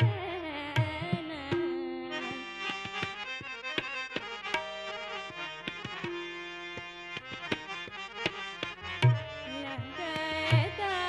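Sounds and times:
harmonium holding reed notes: 0.0s - 11.0s
tabla strokes: 0.0s - 11.0s.

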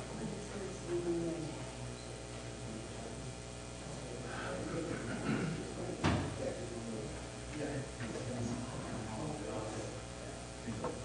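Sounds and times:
murmured voices: 3.9s - 11.0s.

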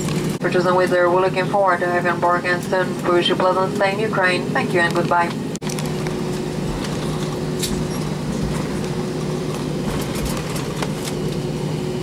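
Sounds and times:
airplane cabin engine rush: 0.0s - 12.0s.

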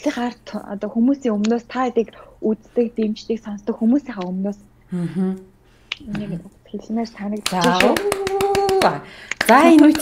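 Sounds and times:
woman talking: 0.0s - 4.7s, 6.0s - 10.0s.

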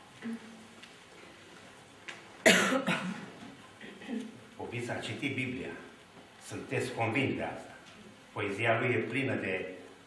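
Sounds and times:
person coughing: 2.4s - 4.3s.

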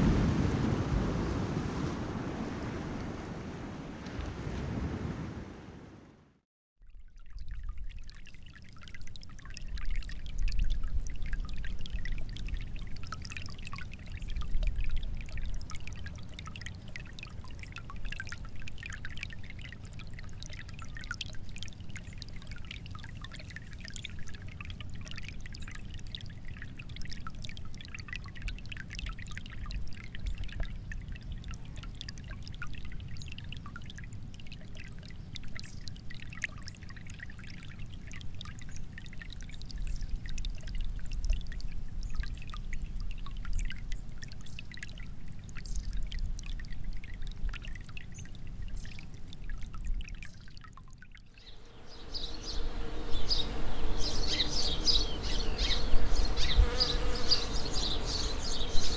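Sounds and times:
water rushing: 0.0s - 6.4s, 51.4s - 58.9s.

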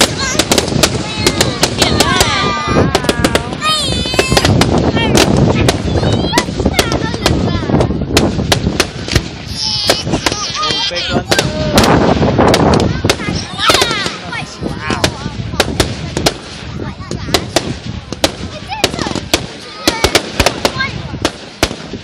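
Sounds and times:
fireworks bangs and crackles: 0.0s - 22.0s.

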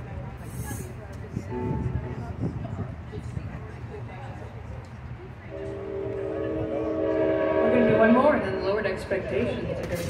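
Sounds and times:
train horn chord: 1.5s - 2.4s, 5.5s - 8.8s.

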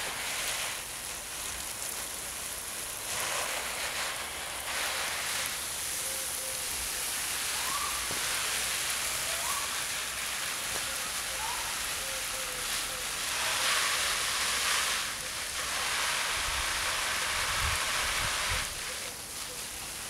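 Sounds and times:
water showering onto leaves: 0.0s - 20.0s.

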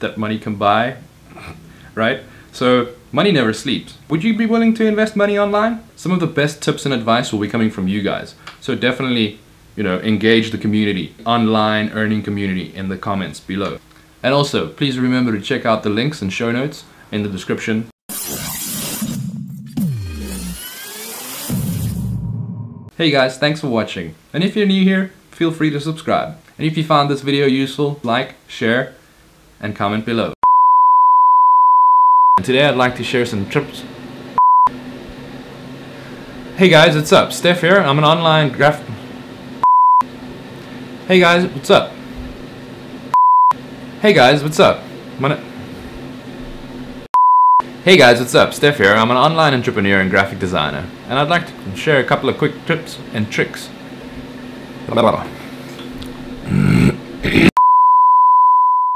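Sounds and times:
test-tone beep: 30.4s - 32.4s, 34.4s - 34.7s, 39.6s - 40.0s, 43.2s - 43.6s, 47.2s - 47.6s, 57.6s - 58.9s.

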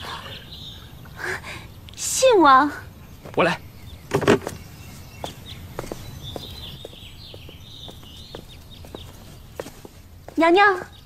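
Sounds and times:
light footsteps: 4.1s - 11.0s.

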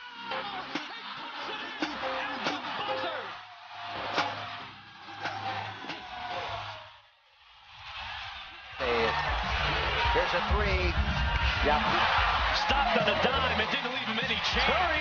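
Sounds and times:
crowd noise: 0.0s - 15.0s
loud music with steady beat: 8.8s - 13.5s.

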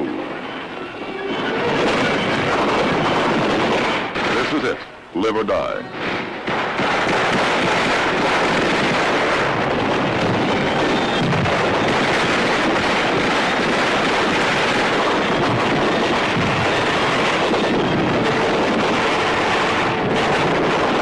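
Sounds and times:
heavy small-arms fire: 1.8s - 4.8s, 6.0s - 21.0s.

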